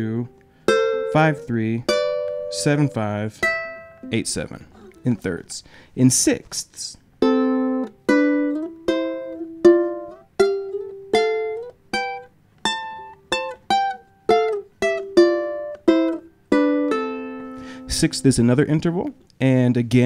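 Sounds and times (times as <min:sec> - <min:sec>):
ukulele plucked chords: 0:00.0 - 0:05.5, 0:07.1 - 0:19.2.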